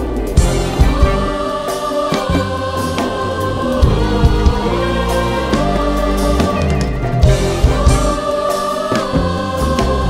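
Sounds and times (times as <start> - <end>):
choir singing long notes: 0.0 - 10.0
keyboard: 0.0 - 10.0
string section: 0.0 - 10.0.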